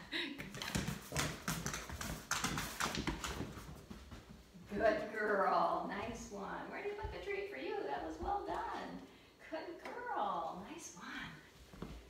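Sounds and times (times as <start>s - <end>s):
footsteps on hard floor: 0.5s - 4.9s.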